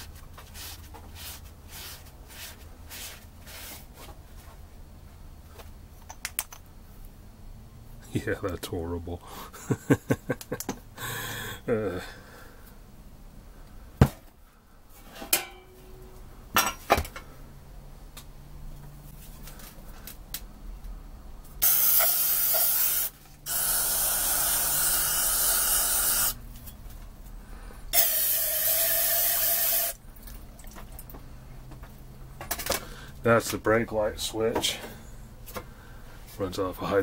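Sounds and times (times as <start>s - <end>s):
aerosol spray can spraying: 21.6s - 26.4s, 28.0s - 30.0s.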